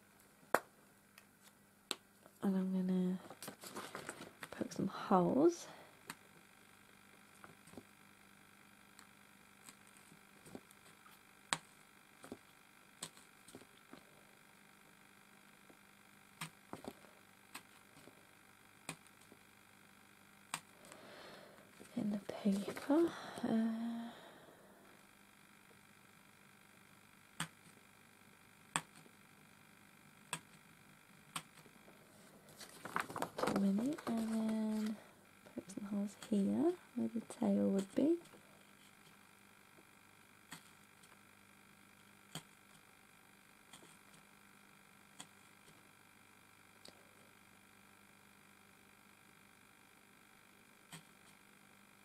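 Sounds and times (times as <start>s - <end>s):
person murmuring: 22.0s - 24.3s.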